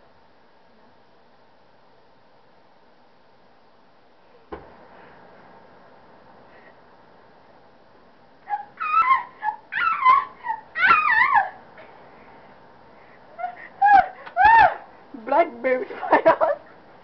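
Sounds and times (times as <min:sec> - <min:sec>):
girl shrieking and squealing: 0:08.4 - 0:11.6, 0:13.4 - 0:14.9.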